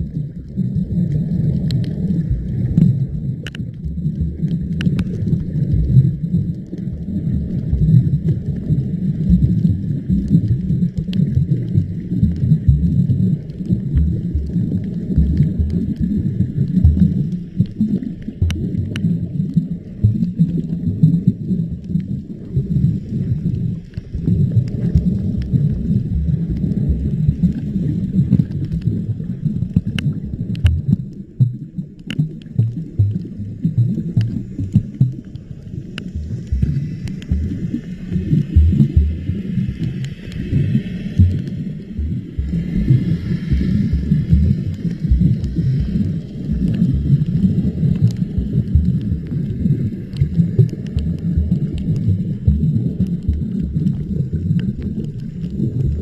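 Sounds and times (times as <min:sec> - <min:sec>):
underwater water rumble: 0:00.0 - 0:56.0
faint clicks: 0:01.1 - 0:05.5, 0:16.6 - 0:19.6, 0:29.6 - 0:37.5, 0:46.6 - 0:52.1.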